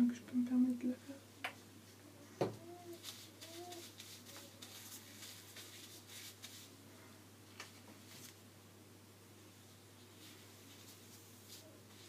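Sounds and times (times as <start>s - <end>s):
gloved hands rustling in hair: 2.9s - 6.8s, 10.0s - 12.0s.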